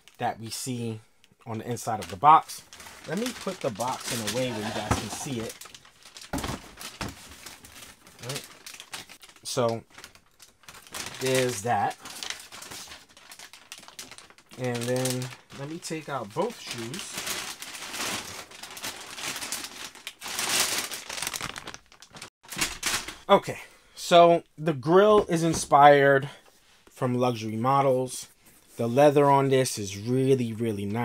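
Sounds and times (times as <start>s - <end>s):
plastic bag crinkling: 1.7s - 23.3s.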